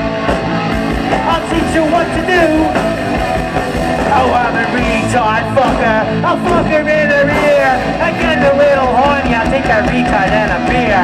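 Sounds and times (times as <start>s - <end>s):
punk rock band playing live: 0.0s - 11.0s
person singing: 4.0s - 11.0s.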